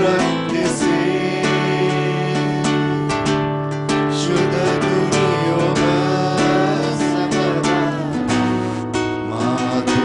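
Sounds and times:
strummed acoustic guitar: 0:00.0 - 0:10.0.

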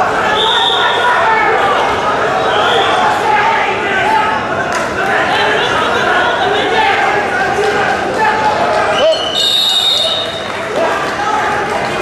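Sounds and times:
crowd voices and shouting: 0:00.0 - 0:12.0
referee's whistle blast: 0:09.0 - 0:10.5.

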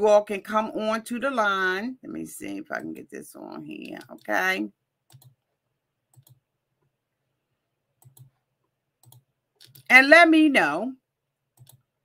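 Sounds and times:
computer mouse clicks: 0:05.1 - 0:05.4, 0:06.1 - 0:06.4, 0:08.0 - 0:08.4, 0:09.0 - 0:09.9, 0:11.5 - 0:11.9.

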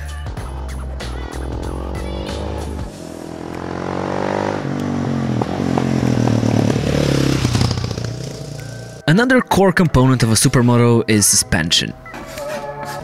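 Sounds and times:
motorcycle accelerating and shifting: 0:00.3 - 0:09.0.

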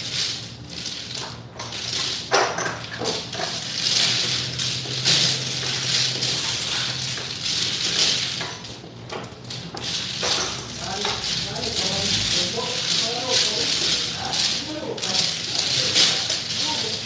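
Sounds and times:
mahjong tiles clattering: 0:00.0 - 0:17.0.

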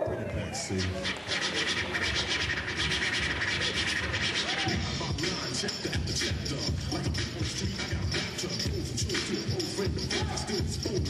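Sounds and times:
hip-hop music: 0:00.0 - 0:11.0
vinyl record scratching: 0:00.0 - 0:11.0.

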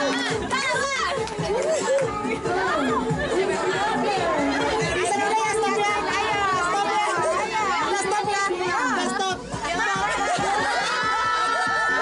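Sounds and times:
women chattering: 0:00.0 - 0:11.6.

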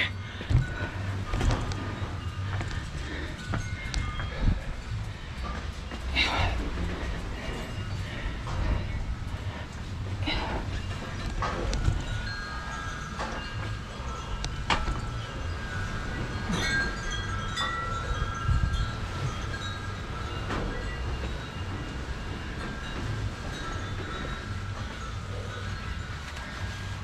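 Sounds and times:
wind chimes ringing: 0:00.0 - 0:27.0
wind rumble on microphone: 0:00.0 - 0:27.0.

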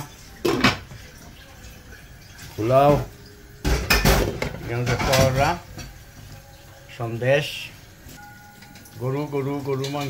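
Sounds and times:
metal kitchenware clattering on pan: 0:03.6 - 0:06.0, 0:09.6 - 0:10.0.

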